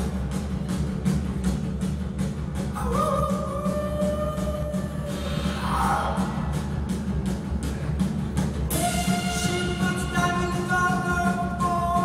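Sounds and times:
heavy drums: 0.0 - 12.0
rock band playing: 0.0 - 12.0.

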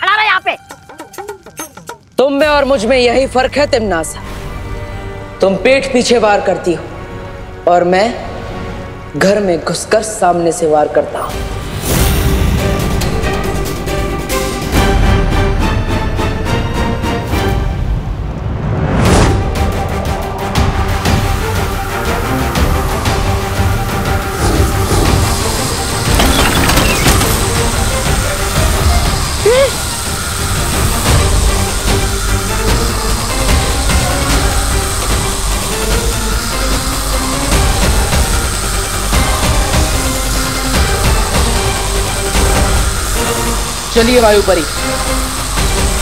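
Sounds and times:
dramatic background score: 0.0 - 46.0.

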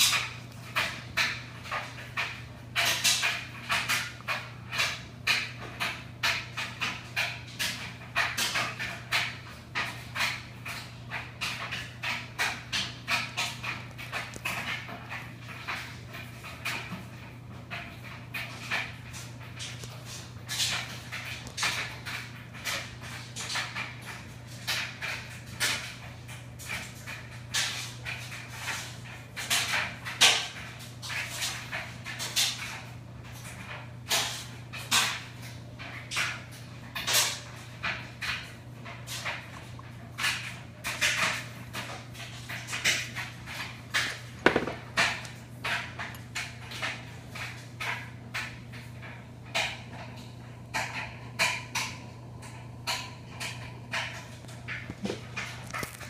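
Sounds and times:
steady low hum: 32.9 - 56.0.

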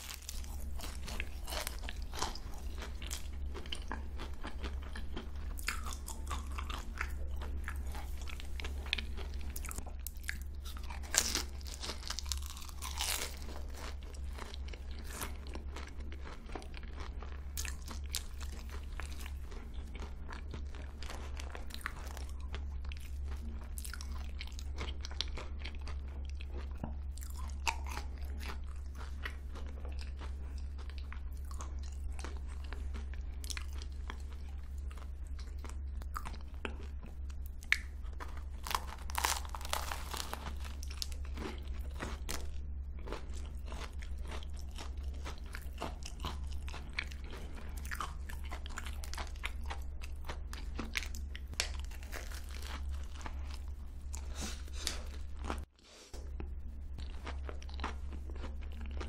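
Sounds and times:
crunching and chewing pastry: 0.0 - 59.0.

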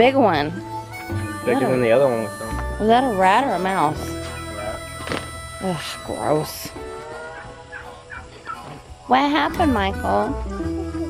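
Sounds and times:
steady background tones: 0.0 - 10.5
fowl giving short high calls: 1.3 - 8.8.

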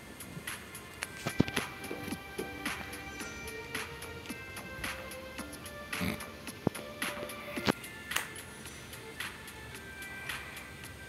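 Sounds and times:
game music with ticking beat: 0.6 - 11.0.

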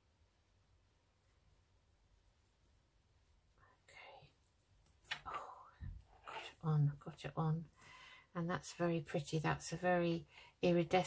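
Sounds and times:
faint whisper: 3.5 - 4.5, 5.2 - 7.0.

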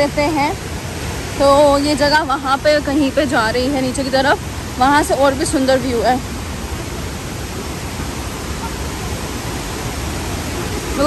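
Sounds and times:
waterfall roaring: 0.0 - 11.0.

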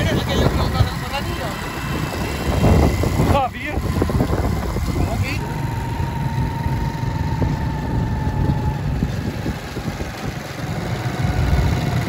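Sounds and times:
motorcycle engines running: 0.0 - 12.0
thin steady whine: 0.0 - 12.0
wind rushing over microphone: 0.0 - 12.0.

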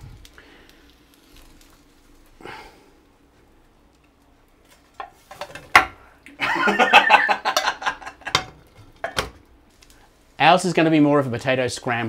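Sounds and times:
frying pan knocking on hob: 5.0 - 6.0, 7.5 - 9.4
laughter in choppy bursts: 6.4 - 8.3.

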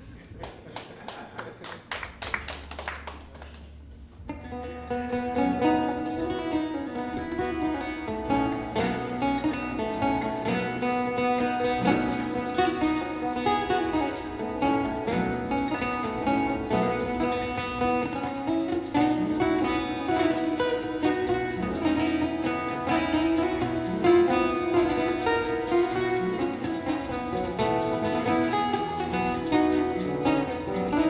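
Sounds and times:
acoustic band playing: 3.7 - 31.0
acoustic guitars: 4.0 - 31.0.

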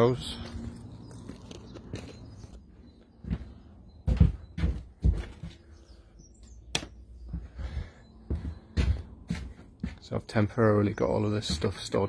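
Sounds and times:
faint bird chirp: 0.0 - 12.0
footsteps on timber floor: 0.4 - 5.9, 7.2 - 12.0.

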